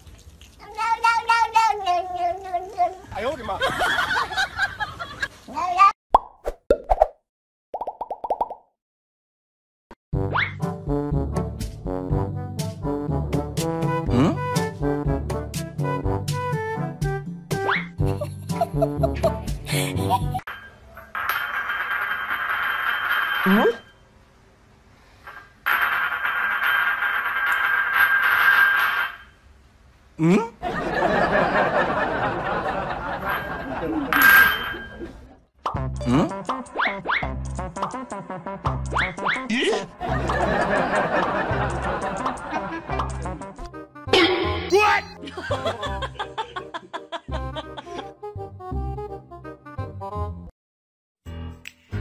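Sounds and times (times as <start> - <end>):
cartoon pops with falling tone: 6.1 - 7.2, 10.2 - 10.6, 17.6 - 18.0, 44.1 - 44.8
upbeat brass music: 10.6 - 17.1.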